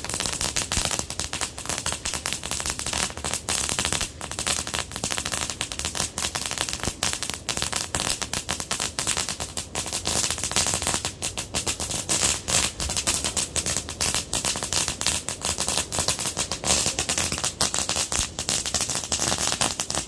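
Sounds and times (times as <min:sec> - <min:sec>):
firework crackling: 0:00.0 - 0:20.0.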